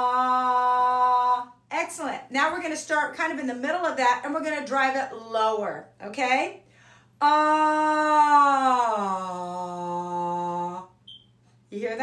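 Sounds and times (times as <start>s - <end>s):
woman singing sustained vowel: 0.0s - 1.6s.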